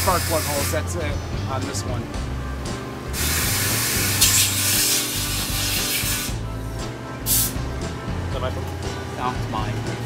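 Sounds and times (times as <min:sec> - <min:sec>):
hiss of pressurised spray: 0:03.2 - 0:06.4, 0:07.3 - 0:07.6.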